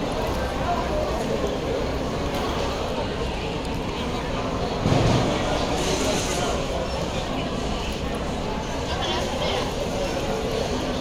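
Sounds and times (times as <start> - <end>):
crowd chatter: 0.0 - 11.0.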